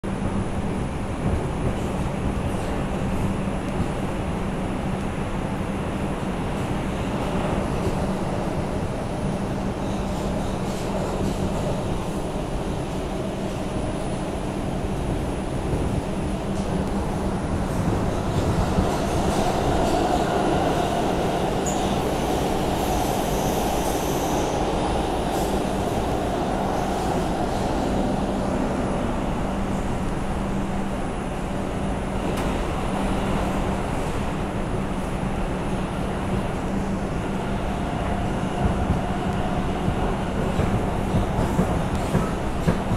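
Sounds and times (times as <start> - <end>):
subway wheels rumbling on rails: 0.0 - 42.9.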